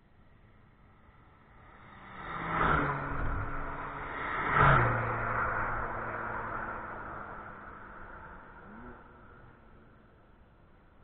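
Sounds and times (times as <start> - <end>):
cars passing at speed: 1.0 - 10.1.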